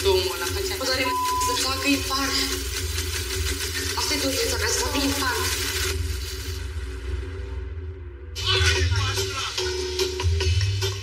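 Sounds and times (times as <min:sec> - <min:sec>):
low background music drone: 0:00.0 - 0:11.0.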